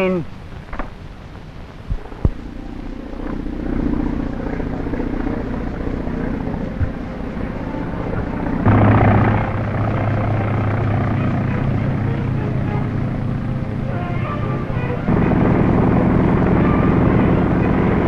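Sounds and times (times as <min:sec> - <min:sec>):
propeller plane engine droning: 0:00.0 - 0:18.0.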